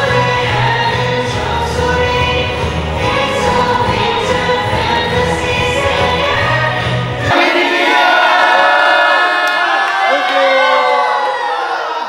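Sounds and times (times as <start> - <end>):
christmas song: 0.0 - 8.8
crowd singing and cheering: 0.0 - 12.0.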